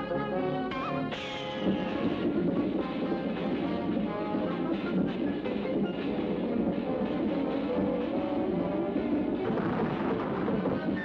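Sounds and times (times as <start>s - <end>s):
cartoon music: 0.1s - 2.3s
rumbling rolling sound effect: 1.4s - 11.0s.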